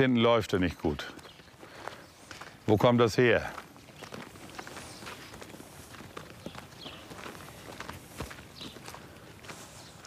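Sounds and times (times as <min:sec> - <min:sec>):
donkey hoof steps on dirt: 0:00.8 - 0:10.0.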